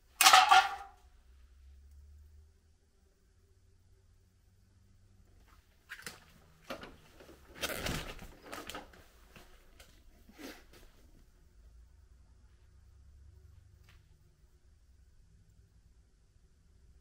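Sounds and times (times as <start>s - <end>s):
faint low rumble: 11.0s - 17.0s.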